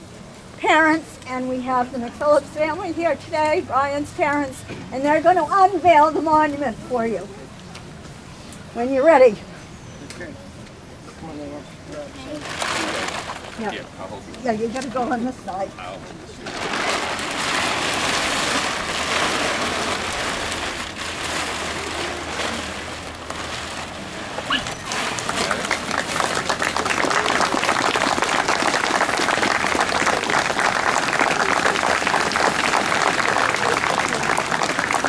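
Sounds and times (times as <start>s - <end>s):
plastic tarp rustling: 12.2s - 13.8s, 16.4s - 35.0s
crowd applauding: 24.8s - 35.0s.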